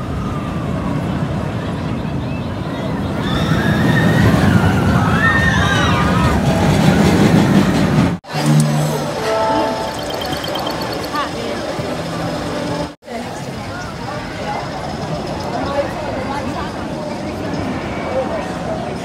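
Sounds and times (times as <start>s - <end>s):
roller coaster rumbling on track: 0.0s - 19.0s
steady held tones: 8.8s - 13.0s.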